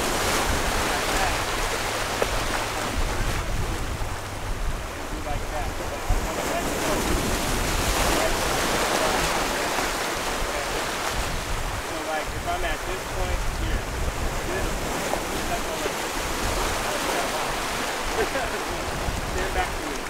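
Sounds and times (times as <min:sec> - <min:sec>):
ocean surf washing over rocks: 0:00.0 - 0:20.0
wind buffeting microphone: 0:00.0 - 0:20.0.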